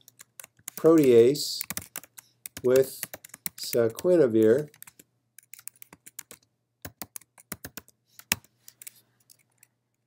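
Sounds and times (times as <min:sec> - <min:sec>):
computer keyboard typing: 0:00.0 - 0:09.7.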